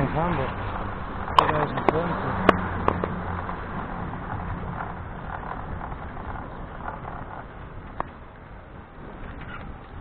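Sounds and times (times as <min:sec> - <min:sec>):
rolling travel noise: 0:00.0 - 0:10.0
wind rushing: 0:00.0 - 0:10.0.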